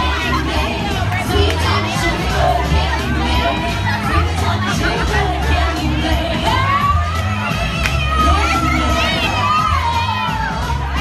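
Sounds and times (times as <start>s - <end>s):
women singing high notes: 0.0s - 10.5s
amplified music with steady bass: 0.0s - 11.0s.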